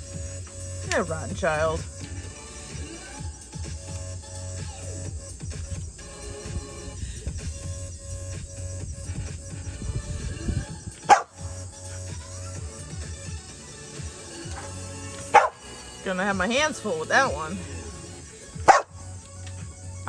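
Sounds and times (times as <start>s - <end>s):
background music: 0.0s - 20.0s
dog barking: 11.0s - 12.1s, 14.5s - 15.6s, 18.6s - 19.0s.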